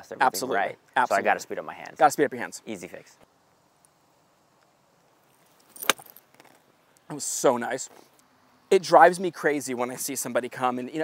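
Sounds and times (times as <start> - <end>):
golf club striking ball: 5.8 - 6.2.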